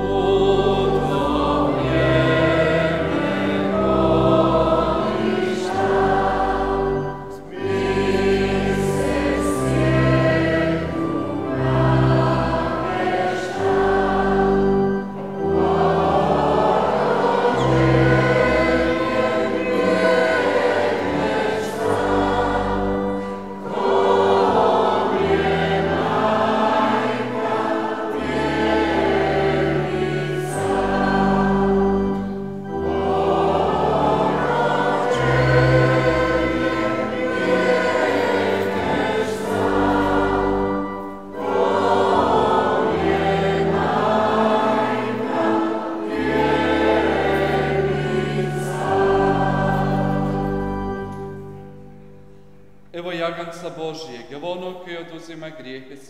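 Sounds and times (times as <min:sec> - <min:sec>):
organ accompaniment: 0:00.0 - 0:55.5
voices singing a hymn: 0:00.0 - 0:55.8.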